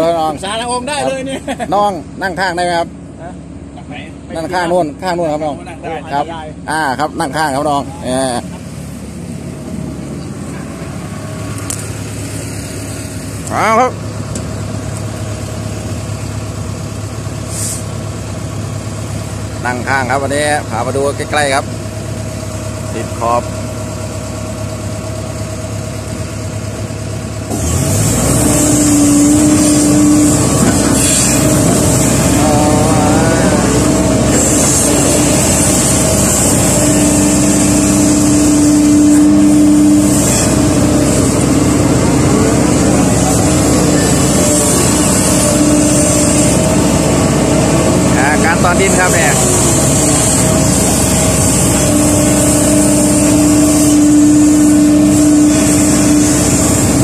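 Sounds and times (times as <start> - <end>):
excavator diesel engine revving: 0.0 - 57.0
pitched machine hum: 0.0 - 57.0.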